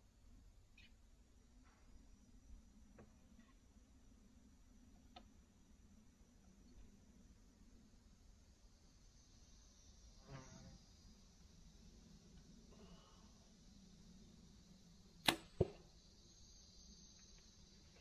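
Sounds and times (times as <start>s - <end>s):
arrow striking target: 15.2s - 15.8s
bowstring snap: 15.2s - 15.8s.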